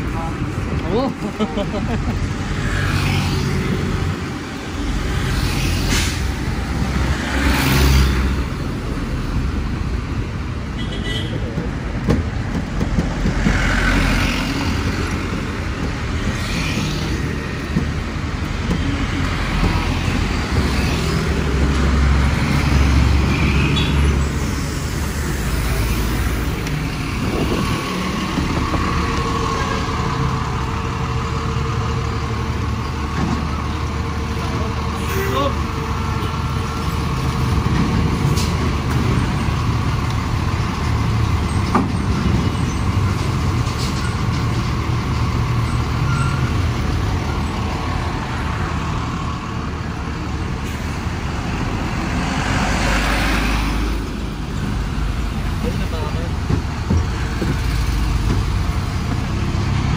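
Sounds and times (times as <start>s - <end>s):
road traffic noise: 0.0s - 59.9s
trucks and cars passing: 0.0s - 59.9s
vehicle engine rumble: 0.0s - 59.9s.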